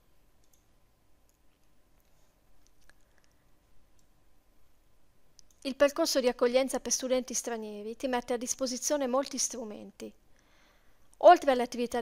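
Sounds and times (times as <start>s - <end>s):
computer mouse clicks: 0.4s - 4.2s, 5.4s - 5.7s.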